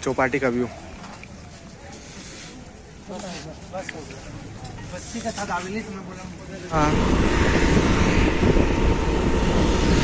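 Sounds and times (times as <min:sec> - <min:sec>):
wind buffeting microphone: 0:06.8 - 0:10.0.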